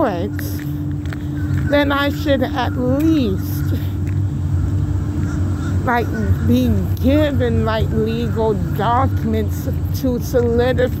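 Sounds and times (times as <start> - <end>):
constant hum: 0.0 - 11.0
low rumble: 0.0 - 11.0.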